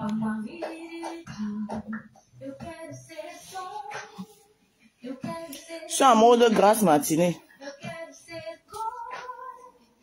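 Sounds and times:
woman singing softly: 0:00.0 - 0:10.0.

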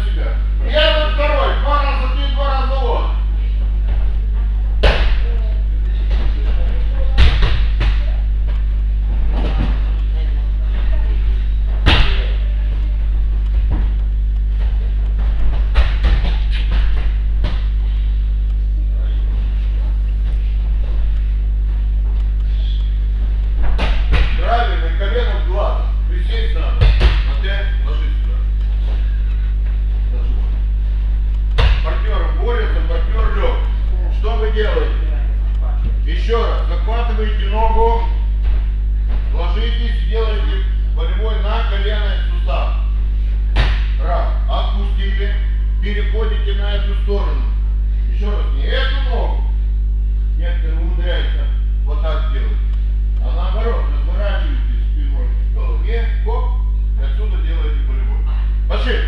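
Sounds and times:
people talking: 0:00.0 - 0:03.2, 0:05.0 - 0:08.4, 0:09.4 - 0:13.0, 0:24.3 - 0:28.5, 0:31.8 - 0:38.2, 0:39.3 - 0:42.9, 0:44.0 - 0:47.5, 0:48.1 - 0:49.4, 0:50.4 - 0:52.6, 0:53.2 - 0:59.0
steady low hum: 0:00.0 - 0:59.0
bodies thudding onto mats: 0:13.1 - 0:17.8.

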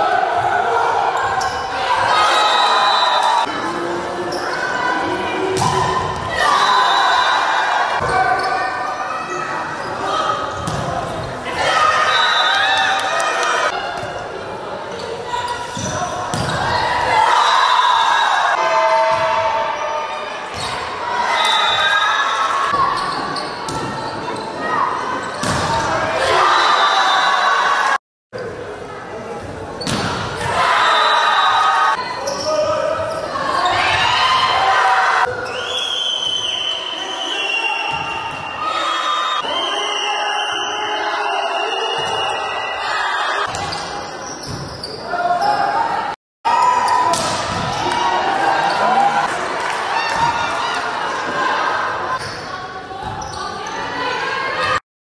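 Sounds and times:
echoing voices in sports hall: 0:00.0 - 0:54.8
volleyball strike: 0:25.4 - 0:25.9, 0:47.0 - 0:48.0.

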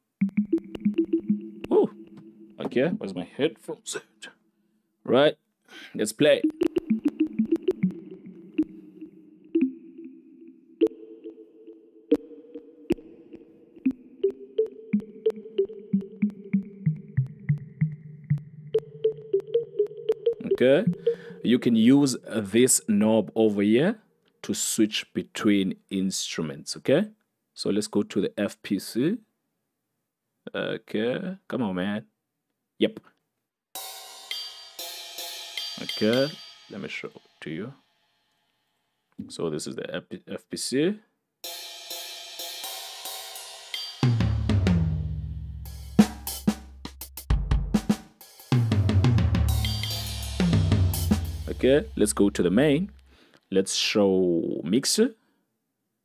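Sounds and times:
synthesizer chords: 0:00.2 - 0:02.6, 0:06.4 - 0:21.7, 0:49.5 - 0:53.1.

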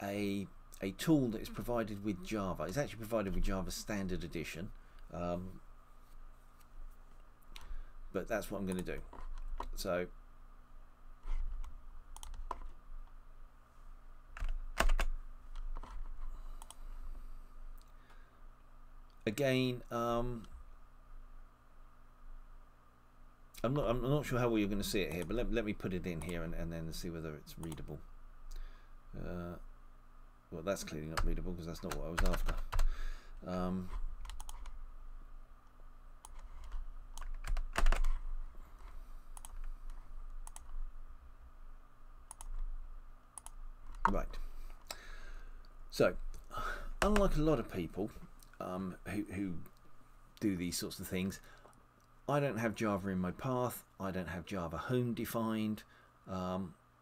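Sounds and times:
low steady hum: 0:00.0 - 0:57.0
keyboard and mouse clicks: 0:11.3 - 0:12.7, 0:33.9 - 0:34.8, 0:36.2 - 0:38.2, 0:38.8 - 0:40.8, 0:42.3 - 0:42.7, 0:43.4 - 0:44.2
keyboard typing: 0:11.3 - 0:12.7, 0:14.4 - 0:16.0, 0:31.2 - 0:32.9, 0:34.2 - 0:34.7, 0:36.2 - 0:38.2, 0:39.4 - 0:40.8.

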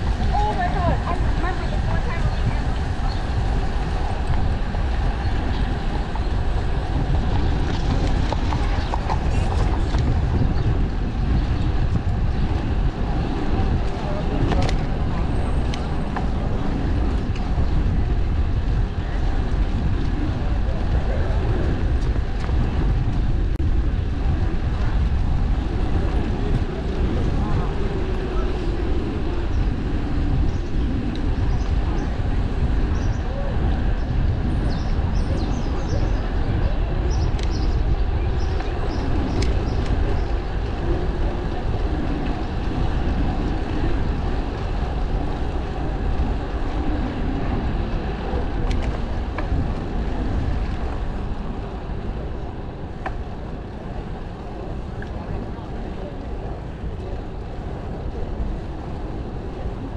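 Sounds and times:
low ride rumble: 0:00.0 - 0:59.9
wind rushing over microphone: 0:00.0 - 0:59.9.

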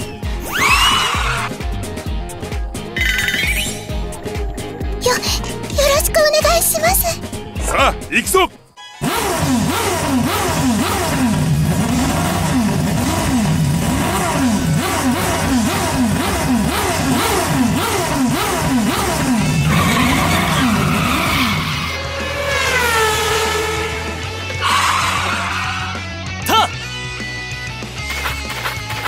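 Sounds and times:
race car engine revving: 0:09.0 - 0:26.3.

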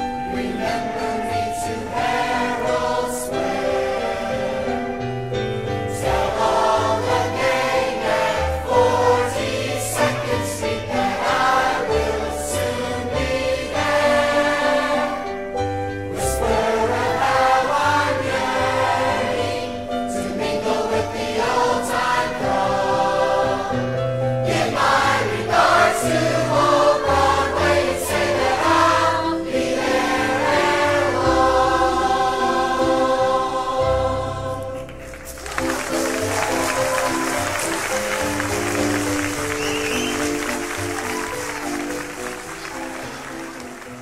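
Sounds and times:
chorus singing with accompaniment: 0:00.0 - 0:43.9.

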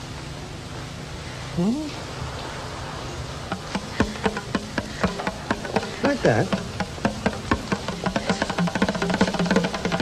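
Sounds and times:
bongo drums tapped by hand: 0:03.5 - 0:10.0.

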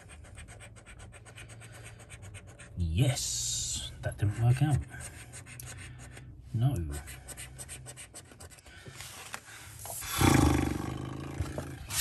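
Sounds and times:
coin scratching a scratchcard: 0:00.0 - 0:02.8, 0:06.9 - 0:08.6.

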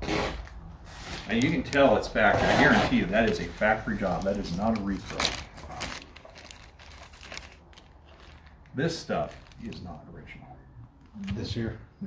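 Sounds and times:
plastic bag crinkling: 0:00.9 - 0:10.0.

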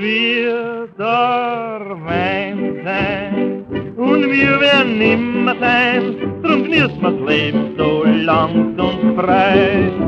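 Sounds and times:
dance orchestra on old record: 0:00.0 - 0:10.0.

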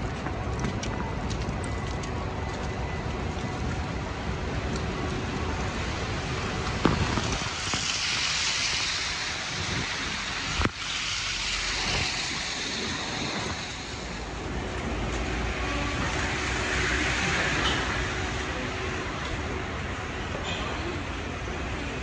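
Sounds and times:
wind buffeting microphone: 0:00.0 - 0:10.8, 0:11.5 - 0:16.4
passing traffic: 0:00.0 - 0:22.0.

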